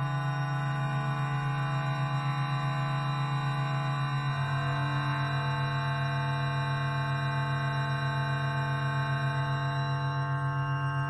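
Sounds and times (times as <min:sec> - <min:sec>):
sustained low drone note: 0:00.0 - 0:11.0.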